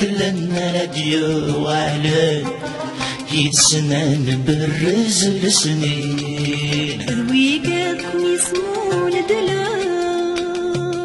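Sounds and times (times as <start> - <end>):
musical accompaniment: 0.0 - 11.0.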